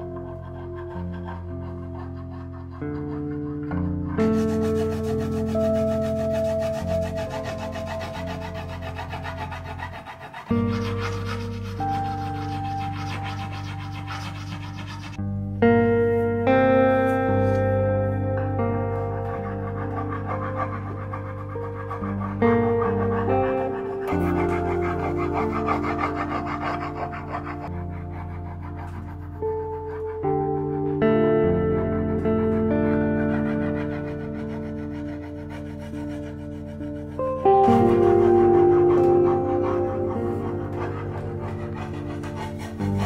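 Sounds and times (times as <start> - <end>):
background music of held chords: 0.0 - 43.0
stone rubbing over a surface: 4.1 - 15.2.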